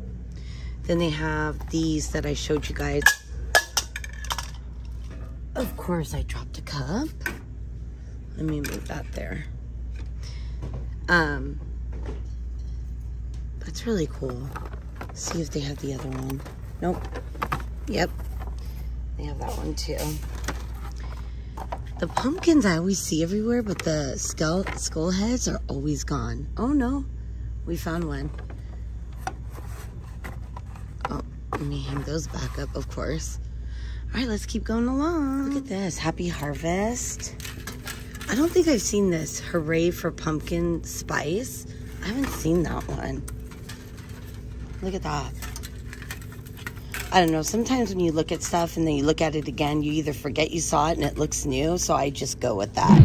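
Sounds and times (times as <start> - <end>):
low hum: 52.5 - 53.0.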